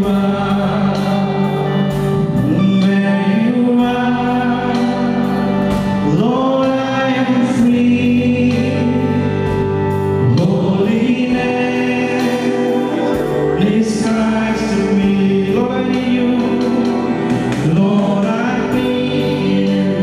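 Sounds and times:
group singing worship song: 0:00.0 - 0:20.0.

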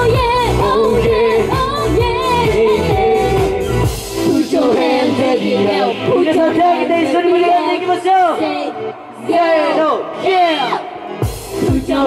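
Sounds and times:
pop song with vocals: 0:00.0 - 0:12.0.

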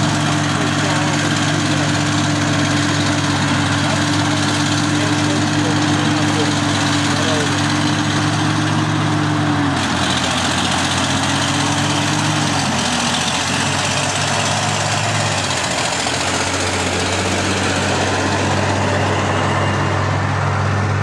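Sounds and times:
heavy diesel engine under load: 0:00.0 - 0:21.0
low engine drone: 0:00.0 - 0:21.0.

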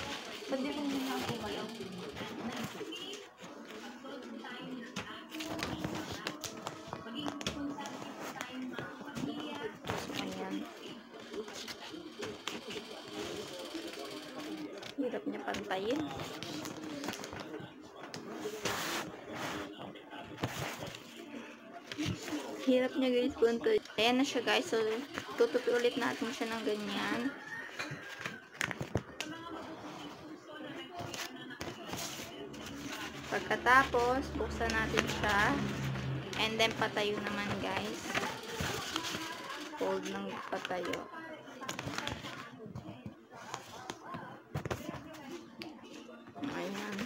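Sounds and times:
paper rustling and folding: 0:04.9 - 0:21.2, 0:30.9 - 0:47.0.

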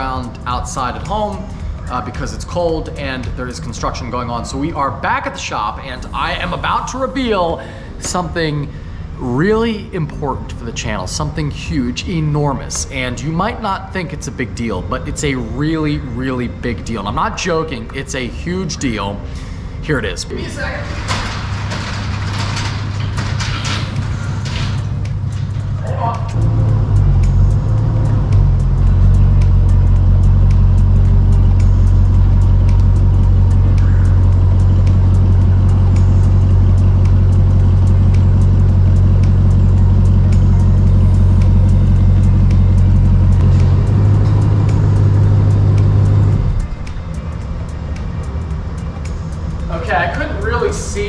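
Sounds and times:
truck engine running low hum: 0:00.0 - 0:19.9, 0:21.3 - 0:51.0.

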